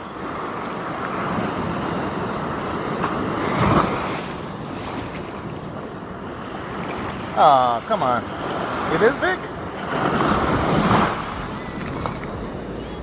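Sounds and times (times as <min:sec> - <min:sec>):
ocean surf washing in: 0:00.0 - 0:13.0.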